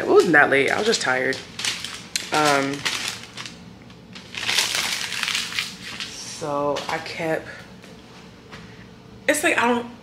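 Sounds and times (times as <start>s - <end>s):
rustling crinkling handling noise: 0.0s - 8.3s.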